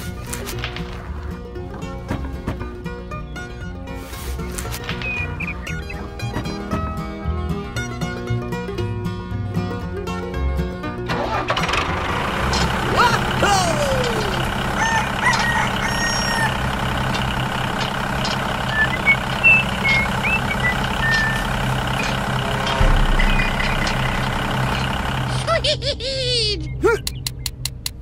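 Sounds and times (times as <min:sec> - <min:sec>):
tractor engine running: 0:00.0 - 0:28.0.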